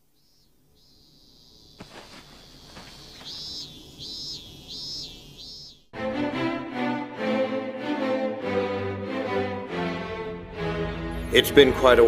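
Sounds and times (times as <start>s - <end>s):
cicada calling: 0.0s - 5.9s.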